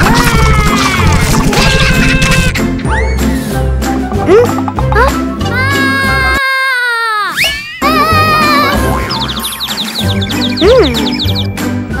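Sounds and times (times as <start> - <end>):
bouncy background music: 0.0 - 6.4, 7.4 - 12.0
high twittering chirps: 7.4 - 11.6.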